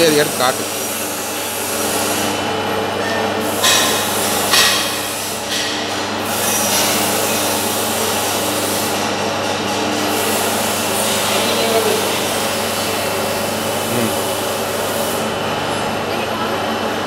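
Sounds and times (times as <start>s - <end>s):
cutting machine motor hum: 9.6s - 17.0s.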